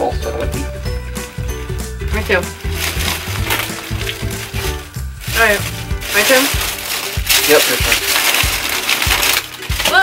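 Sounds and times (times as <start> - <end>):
background music with low beat: 0.0 - 10.0
plastic snack wrapper crinkling: 2.2 - 10.0.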